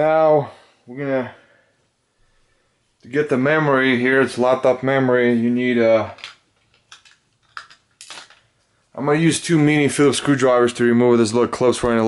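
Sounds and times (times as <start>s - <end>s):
small metal tools clinking: 6.2s - 8.5s.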